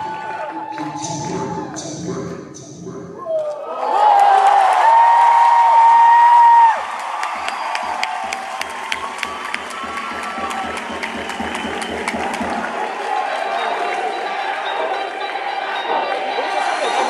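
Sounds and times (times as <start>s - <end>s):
audience cheering and whooping: 0.0s - 1.1s, 3.3s - 17.0s
low beat: 0.0s - 3.4s, 6.1s - 13.4s
scattered claps: 4.9s - 17.0s.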